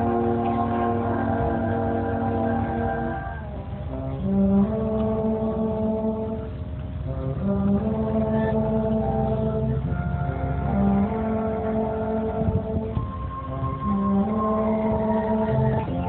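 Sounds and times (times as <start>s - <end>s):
orchestra playing long held chords: 0.0s - 16.0s.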